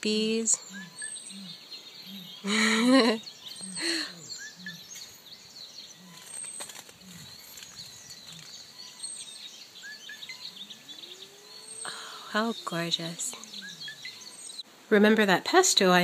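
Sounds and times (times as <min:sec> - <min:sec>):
small birds chirping: 0:00.0 - 0:16.0
bee buzzing: 0:10.2 - 0:14.6.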